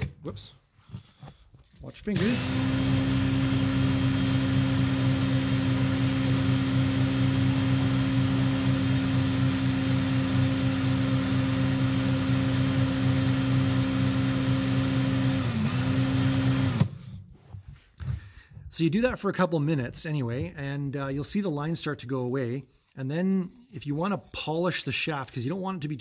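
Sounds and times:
electric drill running: 0:02.2 - 0:17.0
shaft sanding against emery cloth: 0:22.1 - 0:26.0.

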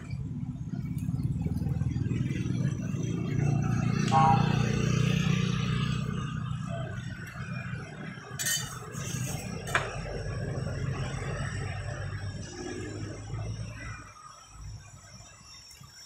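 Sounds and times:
low motor hum: 0:00.0 - 0:15.6.

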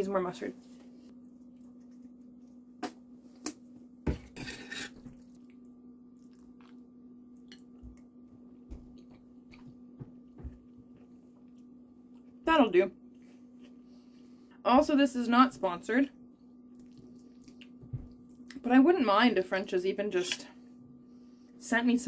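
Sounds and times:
steady low hum: 0:00.0 - 0:22.0
quiet eating sounds: 0:00.6 - 0:14.6, 0:16.2 - 0:18.6.

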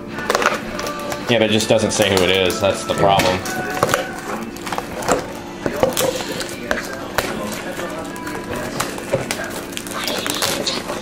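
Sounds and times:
crackles of card pack wrappers: 0:00.1 - 0:11.0.

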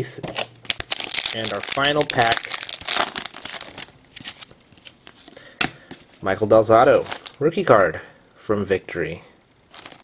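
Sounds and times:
foil wrapper crinkling: 0:00.3 - 0:05.3, 0:07.0 - 0:07.4, 0:09.7 - 0:10.0.

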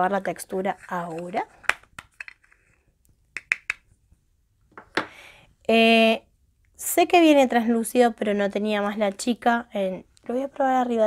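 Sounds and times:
sharp clicks of powder container: 0:01.1 - 0:02.6.

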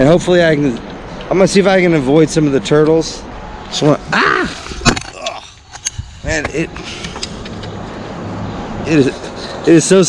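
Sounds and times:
low traffic hum: 0:00.0 - 0:10.0
traffic tyre noise on bridge: 0:00.0 - 0:10.0.

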